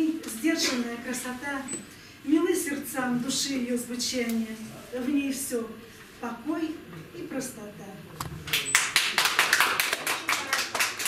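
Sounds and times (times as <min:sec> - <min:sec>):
audience applauding: 0:08.5 - 0:11.0.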